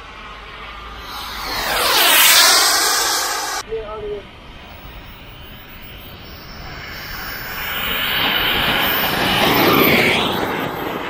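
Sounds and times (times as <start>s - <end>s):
model jet fan whine passing: 0.6s - 11.0s.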